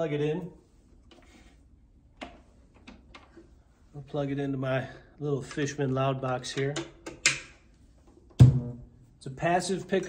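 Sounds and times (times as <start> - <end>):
loud pop through amplifier: 8.4 - 8.8.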